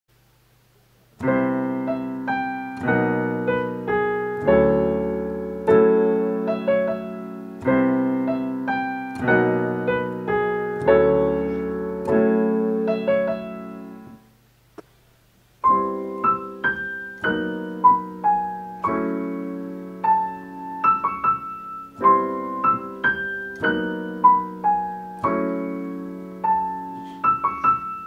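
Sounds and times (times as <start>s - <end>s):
piano playing jazz chords: 1.2s - 14.3s, 15.6s - 28.0s.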